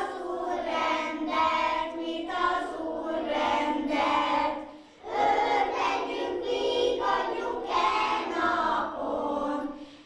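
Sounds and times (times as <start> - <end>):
children singing: 0.0 - 9.9.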